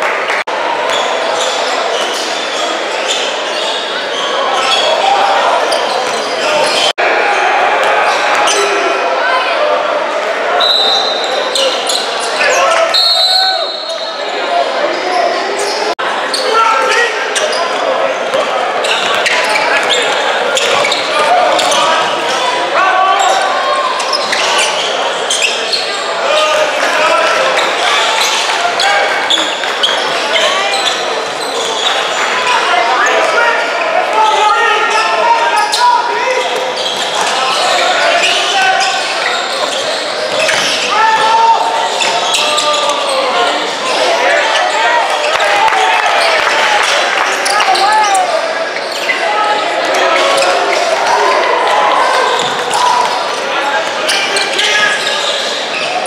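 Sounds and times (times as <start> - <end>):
voices calling out: 0.0 - 56.0.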